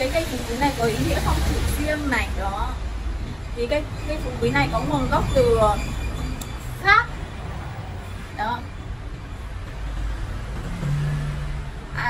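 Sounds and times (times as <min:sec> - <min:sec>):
passing vehicle rumble: 0:00.0 - 0:12.0.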